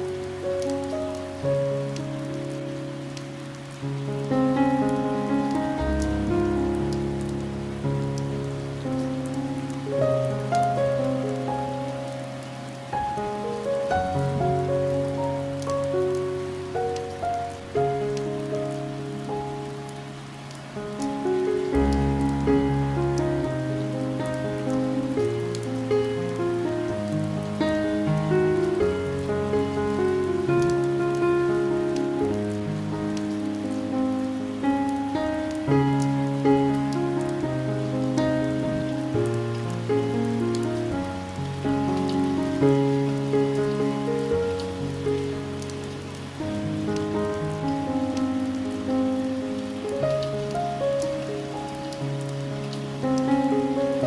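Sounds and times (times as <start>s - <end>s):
rain pattering on a window: 0.0s - 54.0s
slow soft piano music: 0.0s - 54.0s.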